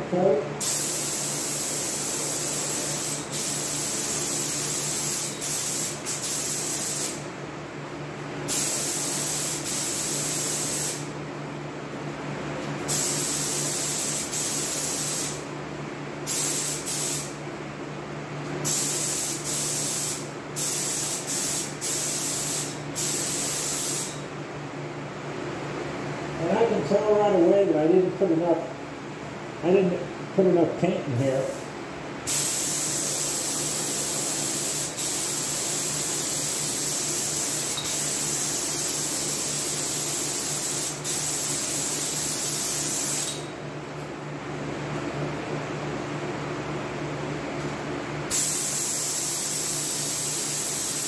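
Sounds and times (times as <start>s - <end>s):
spray gun air hiss: 0.6s - 7.2s, 8.5s - 11.1s, 12.9s - 15.4s, 16.2s - 17.4s, 18.6s - 24.2s, 31.4s - 43.5s, 48.3s - 51.0s.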